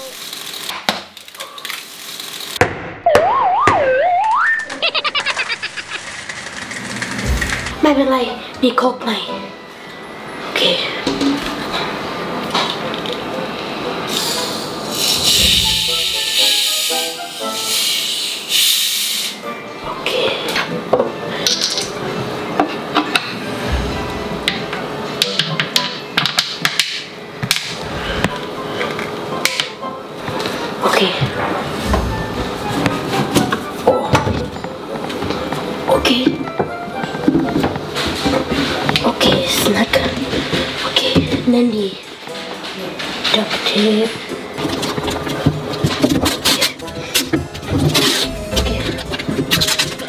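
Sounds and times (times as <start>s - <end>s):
background music: 6.8s - 50.0s.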